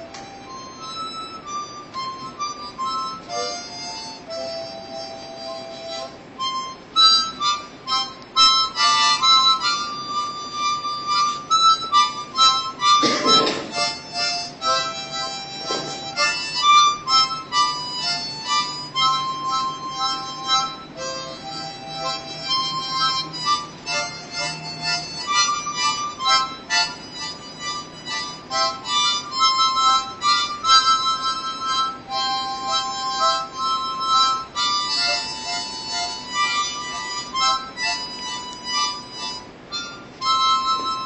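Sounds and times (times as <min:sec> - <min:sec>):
harmonica melody: 0:00.0 - 0:41.0.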